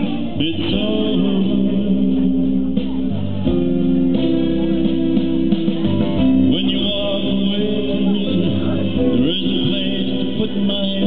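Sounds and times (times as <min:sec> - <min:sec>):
guitar backing track: 0:00.0 - 0:11.0.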